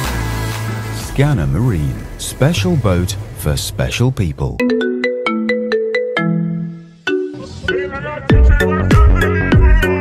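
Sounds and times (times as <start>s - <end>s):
smartphone ringtone melody: 4.6s - 8.8s.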